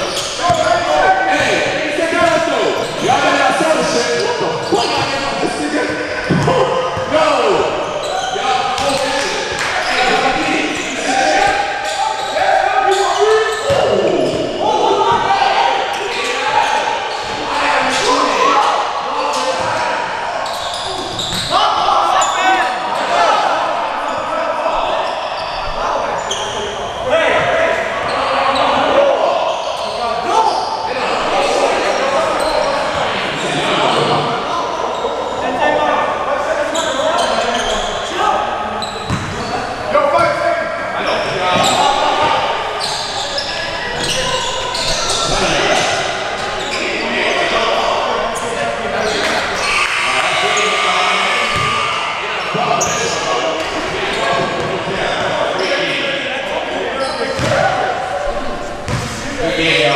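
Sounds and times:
people shouting and chattering: 0.0s - 59.9s
basketball bouncing on gym floor: 39.1s - 39.4s, 57.4s - 57.6s, 58.9s - 59.1s.

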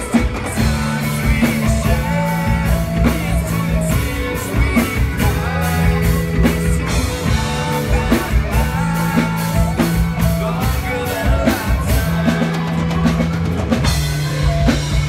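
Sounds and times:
drum kit steady beat: 0.0s - 15.0s
electric guitars: 0.0s - 15.0s
low bass notes: 0.0s - 15.0s.

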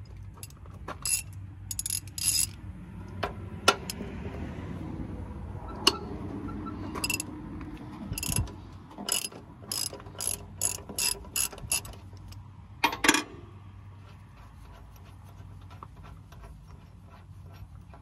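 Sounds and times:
ratchet wrench clicking: 0.4s - 2.6s, 7.0s - 7.3s, 8.2s - 8.5s, 9.1s - 12.4s.

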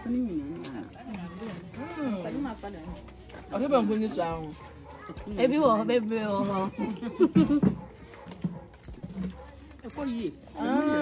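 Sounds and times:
women talking and exclaiming: 0.0s - 11.0s.

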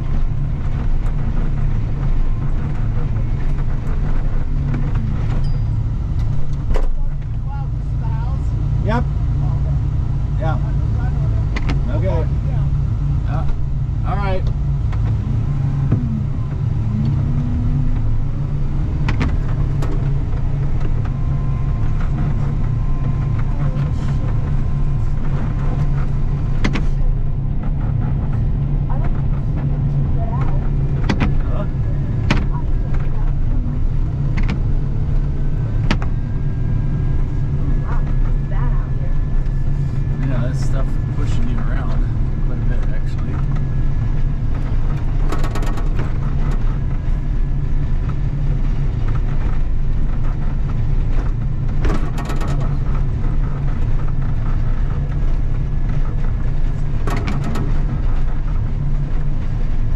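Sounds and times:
snow plow engine rumbling: 0.0s - 59.9s
sharp clicks and knocks: 14.4s - 31.5s, 32.2s - 36.4s, 41.9s - 47.1s, 49.0s - 59.5s.

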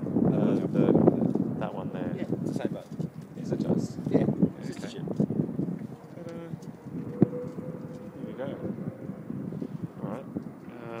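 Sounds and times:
low voice murmuring: 6.1s - 11.0s.

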